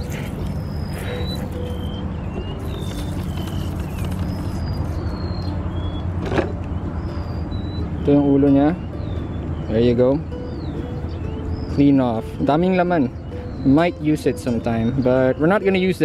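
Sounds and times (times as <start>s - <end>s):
small birds chirping: 0.0s - 16.0s.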